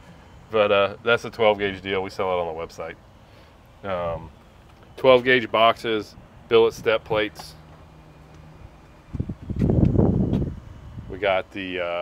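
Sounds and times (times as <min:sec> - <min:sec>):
wind buffeting microphone: 0:08.6 - 0:11.3.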